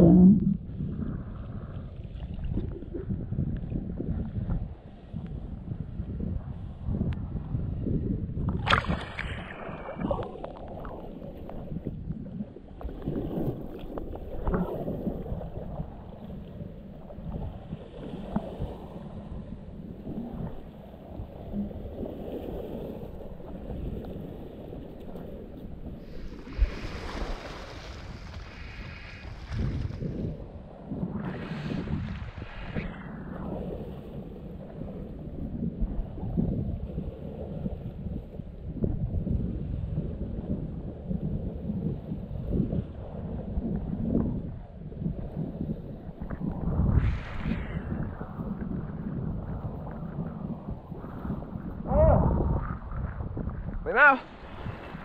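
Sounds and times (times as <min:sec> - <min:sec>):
wind rumbling on microphone: 0:00.0 - 0:55.0
water splashing: 0:08.5 - 0:16.0, 0:22.4 - 0:30.6
seawater lapping around rocks: 0:08.5 - 0:35.1, 0:52.8 - 0:55.0.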